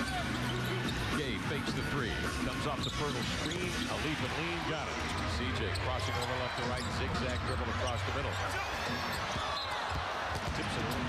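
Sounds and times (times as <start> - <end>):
sneakers squeaking: 0.0 - 10.3.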